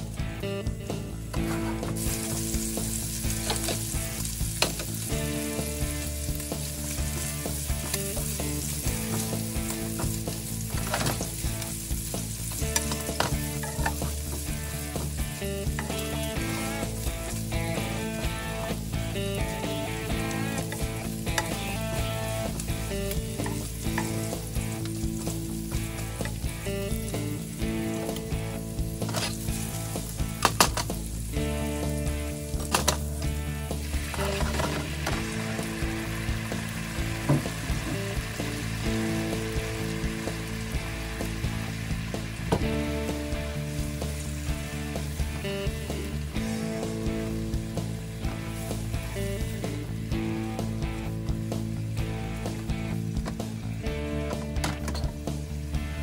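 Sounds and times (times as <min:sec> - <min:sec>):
bacon sizzling in a frying pan: 0:00.0 - 0:56.0.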